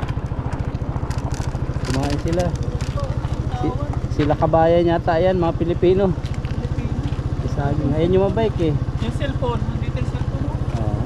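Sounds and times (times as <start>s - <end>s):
motorcycle engine low putter: 0.0s - 11.0s.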